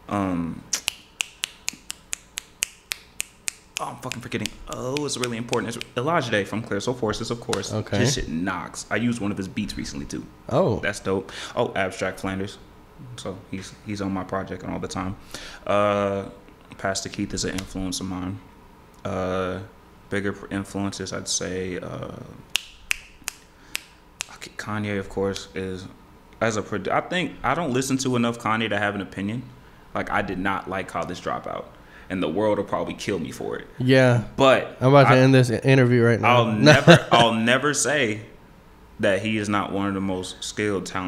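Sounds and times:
man snapping fingers: 0.7 - 6.0, 22.5 - 24.4.

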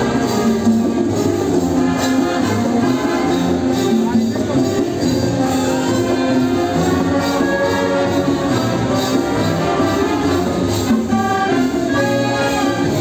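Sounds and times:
clarinets and brass playing: 0.0 - 13.0
light steady percussion beat: 0.0 - 13.0.

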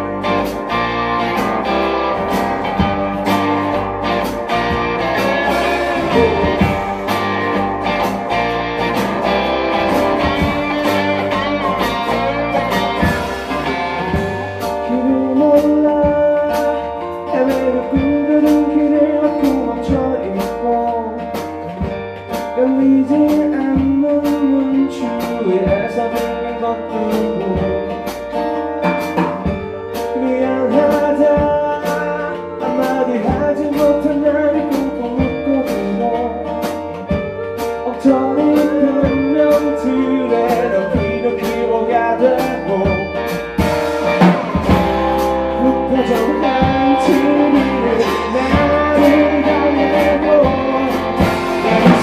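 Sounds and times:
acoustic guitars: 0.0 - 52.0
bass guitar: 0.0 - 52.0
man singing: 5.1 - 7.2, 14.7 - 21.5, 22.5 - 28.1, 29.9 - 36.8, 37.8 - 43.6, 45.4 - 52.0.

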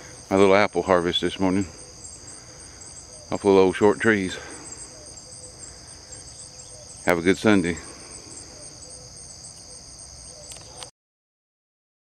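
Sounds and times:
crickets chirring: 0.0 - 10.9.

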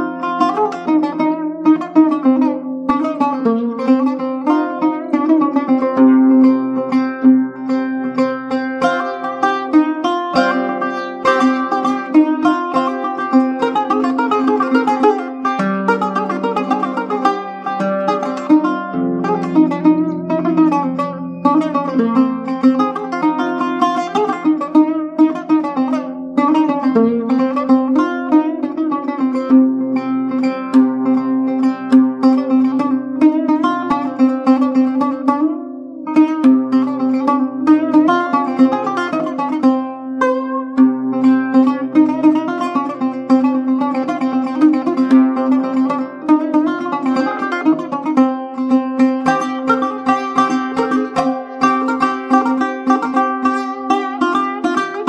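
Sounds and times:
solo oud melody: 0.0 - 55.0.

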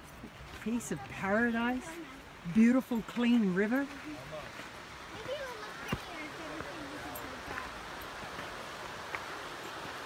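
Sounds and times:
outdoor background hiss: 0.0 - 10.0.

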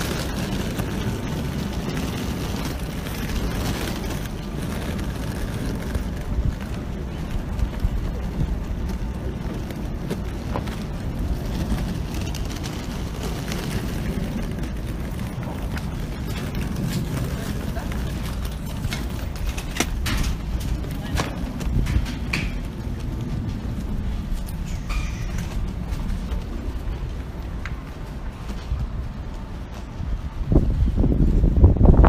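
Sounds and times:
suitcase wheels rolling on concrete: 0.0 - 32.0.

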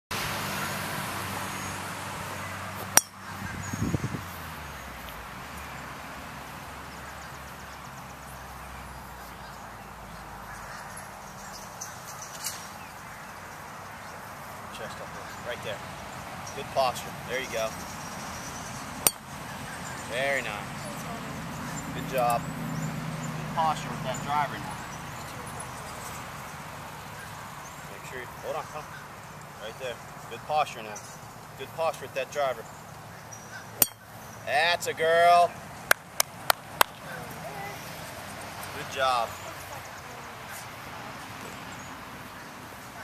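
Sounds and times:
golf club striking ball: 2.9 - 3.2, 19.0 - 19.3, 33.8 - 34.1.

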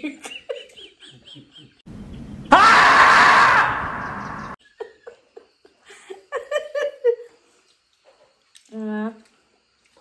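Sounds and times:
marmot screaming: 2.5 - 4.6.

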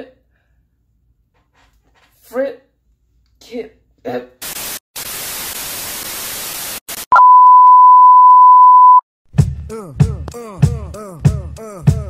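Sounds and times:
steady test-tone beep: 7.2 - 9.0.

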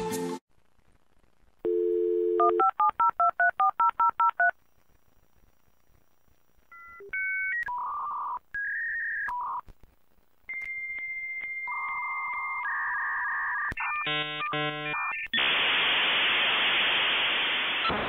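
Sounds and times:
dial tone: 1.7 - 4.5.

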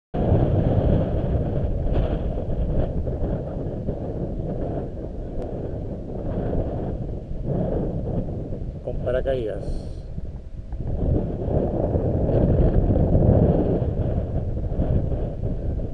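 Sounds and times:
wind buffeting microphone: 0.2 - 15.9.

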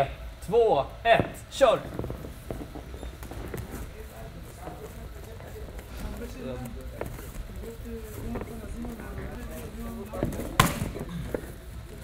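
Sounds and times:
footsteps shuffling on gym mat: 1.2 - 12.0.

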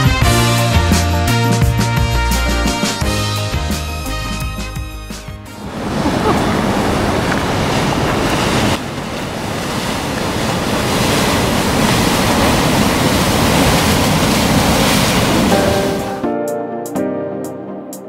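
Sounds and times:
surf breaking on rocks: 5.5 - 16.3
wind buffeting microphone: 5.6 - 16.2.

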